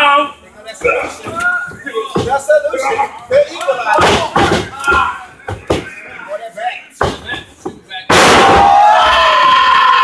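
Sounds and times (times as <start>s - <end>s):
people shouting: 8.2s - 10.0s.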